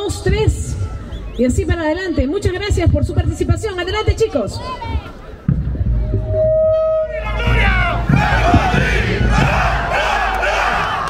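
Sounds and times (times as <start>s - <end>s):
crowd shouting and cheering: 4.5s - 11.0s.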